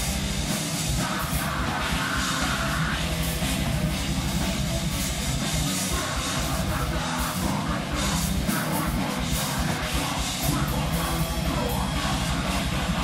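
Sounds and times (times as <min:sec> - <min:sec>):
distorted electric guitars: 0:00.0 - 0:13.0
drum kit: 0:00.0 - 0:13.0
electric bass: 0:00.0 - 0:13.0.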